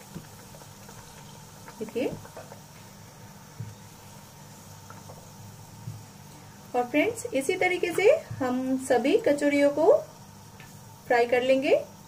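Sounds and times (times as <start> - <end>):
hot oil bubbling: 0.0 - 12.0.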